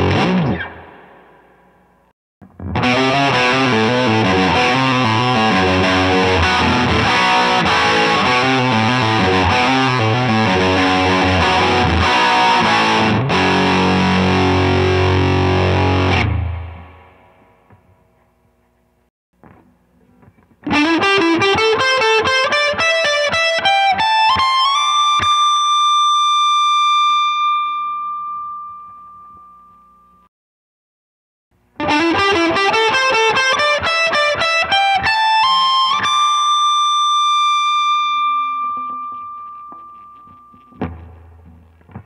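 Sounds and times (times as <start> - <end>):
distorted electric guitar run: 0.0 - 1.0, 2.4 - 17.1.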